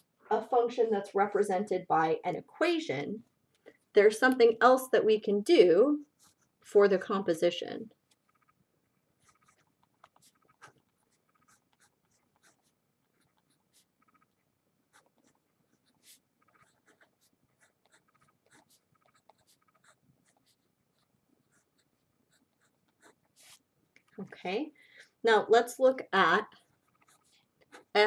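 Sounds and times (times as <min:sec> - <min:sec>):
pen writing on paper: 0:06.2 - 0:06.5, 0:09.2 - 0:23.6, 0:26.6 - 0:27.9.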